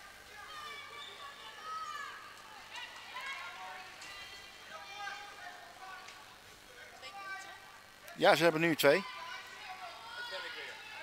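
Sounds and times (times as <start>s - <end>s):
players calling and chattering: 0.0s - 11.0s.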